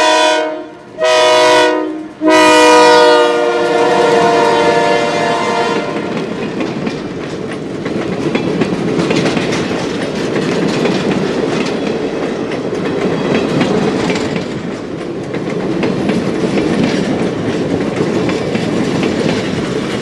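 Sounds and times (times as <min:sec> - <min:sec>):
train rail rumble: 0:00.0 - 0:20.0
wheels clicking over rail joints: 0:05.8 - 0:20.0.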